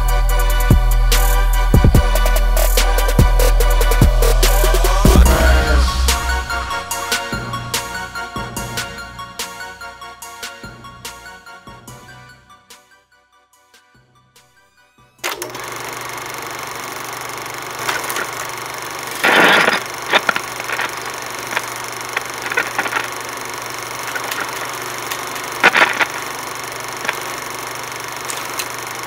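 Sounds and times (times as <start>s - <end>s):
crackling static: 19.1s - 29.0s
scattered pops: 19.2s - 29.0s.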